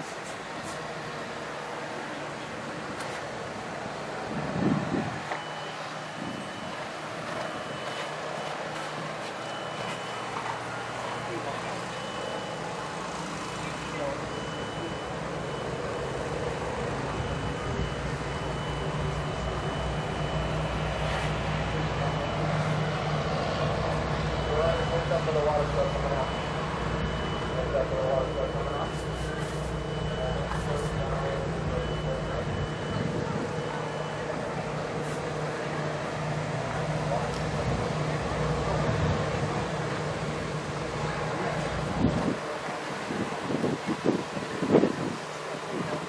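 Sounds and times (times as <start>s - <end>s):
faint voices: 4.1s - 46.0s
faint high beep: 5.3s - 35.3s.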